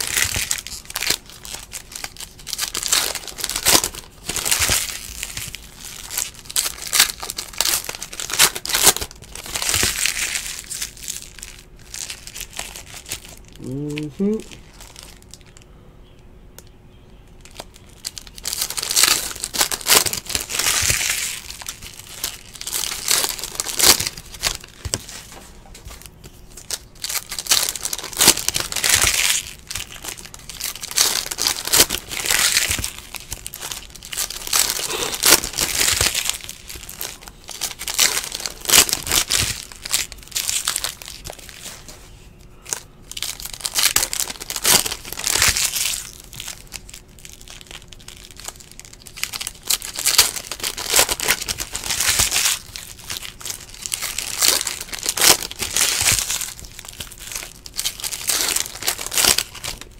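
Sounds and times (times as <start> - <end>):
foil wrappers crinkling and tearing: 0.0 - 15.7, 17.4 - 59.9.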